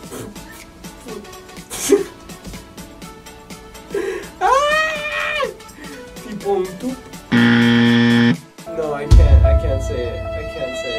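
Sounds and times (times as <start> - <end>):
wrong-answer buzzer: 7.3 - 8.5.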